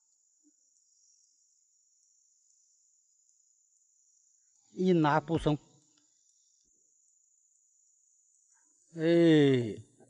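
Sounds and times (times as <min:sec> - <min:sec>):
high-pitched insect chirring: 0:00.0 - 0:09.8.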